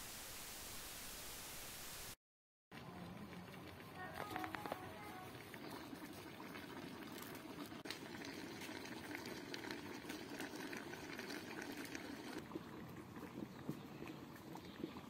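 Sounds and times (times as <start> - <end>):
pot bubbling: 2.8 - 15.0.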